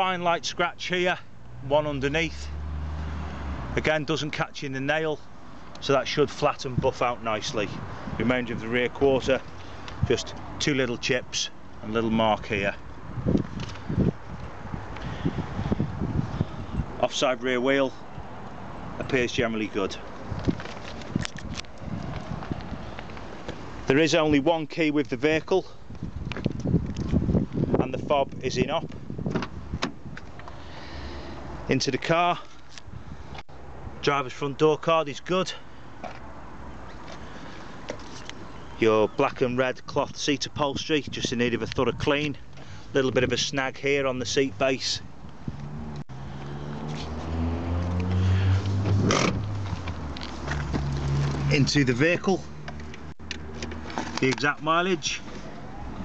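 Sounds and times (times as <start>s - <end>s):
footsteps on tarmac: 20.0s - 23.9s, 25.8s - 27.7s, 45.1s - 55.7s.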